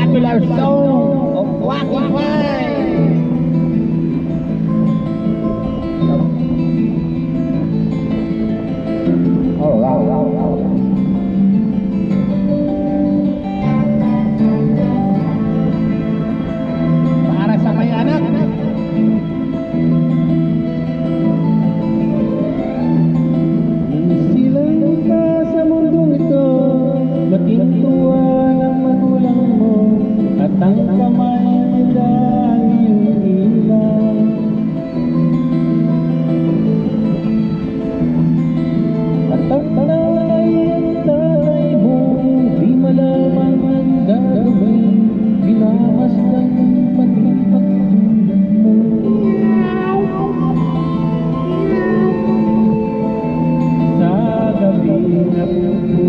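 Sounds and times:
guitar-led backing music: 0:00.0 - 0:56.0.

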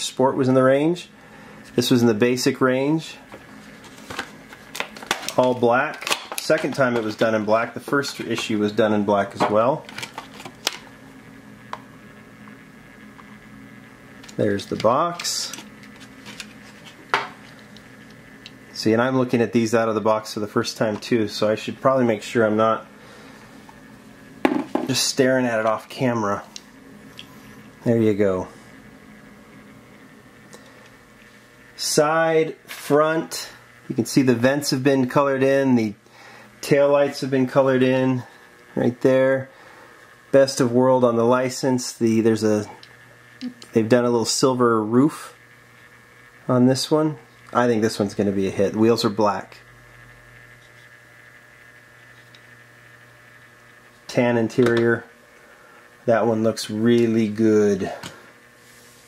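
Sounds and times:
man speaking: 0:00.0 - 0:01.2, 0:01.8 - 0:03.3, 0:05.3 - 0:09.9, 0:14.4 - 0:15.6, 0:18.7 - 0:22.9, 0:24.8 - 0:26.5, 0:27.8 - 0:28.6, 0:31.8 - 0:36.0, 0:36.6 - 0:39.5, 0:40.3 - 0:42.8, 0:43.6 - 0:45.4, 0:46.5 - 0:49.6, 0:56.0 - 0:58.1
low steady hum with hiss: 0:00.0 - 0:59.0.

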